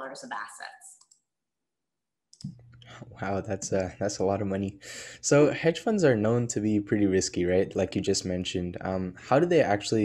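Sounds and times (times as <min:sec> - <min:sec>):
person speaking: 0:02.4 - 0:10.0.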